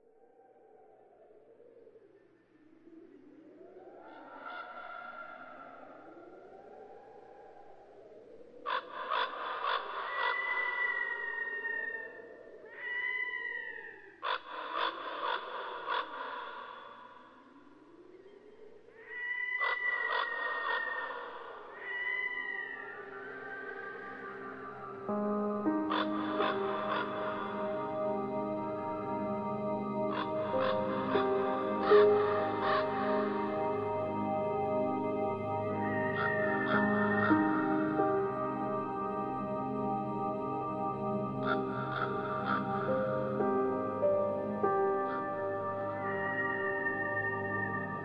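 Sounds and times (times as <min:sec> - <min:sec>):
soft music: 0:22.9 - 0:48.0.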